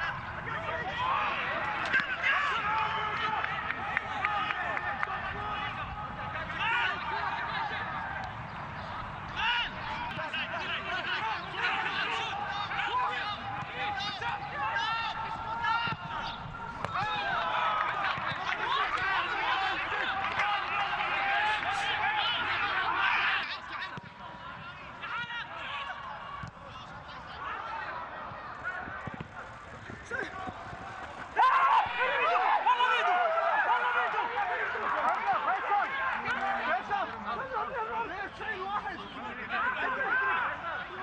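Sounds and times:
players shouting: 0.0s - 41.0s
men shouting: 10.4s - 23.7s.

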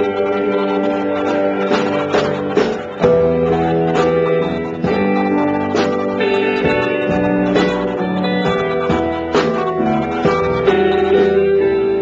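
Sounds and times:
electric guitar chords: 0.0s - 12.0s.

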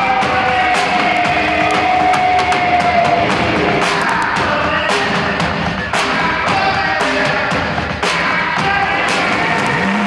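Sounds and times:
rock band playing loud: 0.0s - 10.0s.

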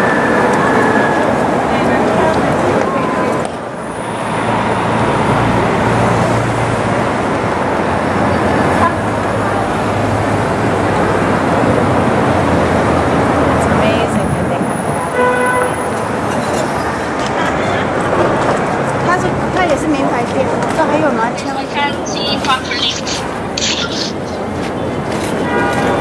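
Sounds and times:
street traffic noise: 0.0s - 26.0s
voices of passers-by: 0.0s - 26.0s
vehicle horn: 15.1s - 16.0s, 25.4s - 26.0s.

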